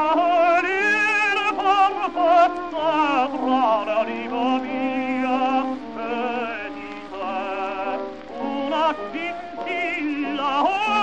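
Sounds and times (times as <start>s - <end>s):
operatic tenor singing: 0.0s - 11.0s.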